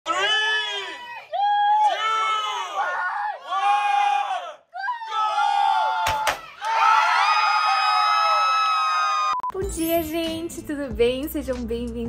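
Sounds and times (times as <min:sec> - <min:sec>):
group shouting drawn-out calls: 0:00.1 - 0:07.1
crowd screaming and cheering: 0:00.1 - 0:09.4.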